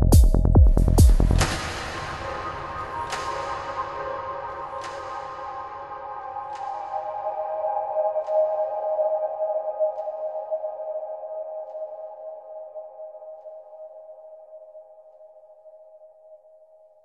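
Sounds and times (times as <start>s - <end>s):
low bass: 0.0s - 1.6s.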